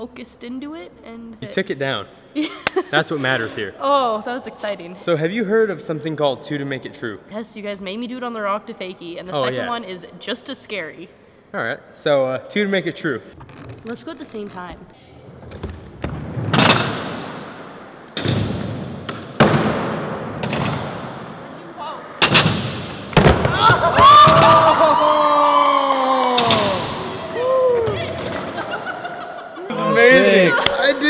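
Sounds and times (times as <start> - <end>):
people laughing: 23.5 - 25.3, 27.9 - 31.0
people whooping and cheering: 23.5 - 28.4.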